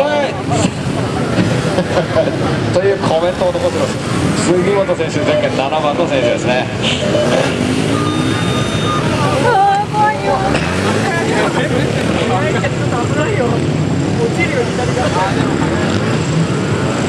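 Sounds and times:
motorcycle engine revving: 0.0 - 17.0.

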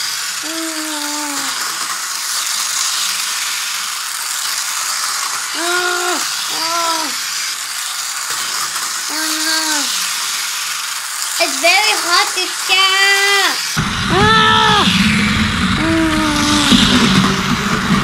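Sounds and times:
toy train motor whirring: 0.0 - 18.0
child's short vocal sounds: 0.4 - 1.7, 5.6 - 7.2, 9.1 - 10.0, 15.8 - 16.8.

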